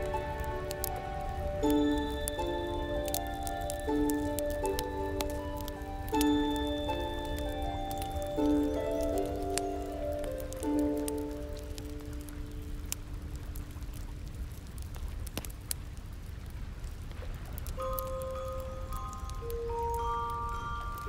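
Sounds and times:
bell-like notes: 0.0 - 12.3, 17.8 - 21.0
slow music with held notes: 0.0 - 13.4, 17.8 - 21.0
burning wood crackling: 0.0 - 21.0
campfire rumble: 0.0 - 21.0.

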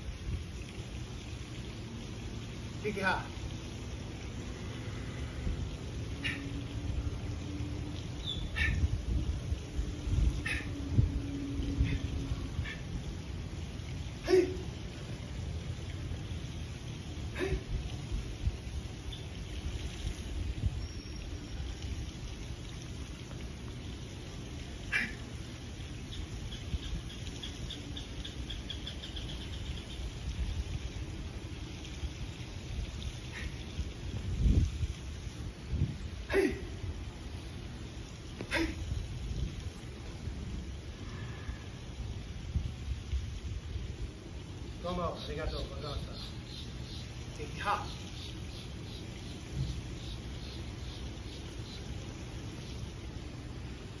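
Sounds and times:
wind rumble on microphone: 4.6 - 13.1, 17.6 - 22.3, 32.0 - 37.2, 38.4 - 44.4.

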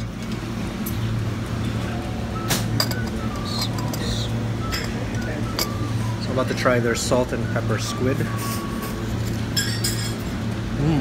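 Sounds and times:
restaurant room hum: 0.0 - 11.0
tableware clinking: 2.4 - 5.8, 8.4 - 10.3.

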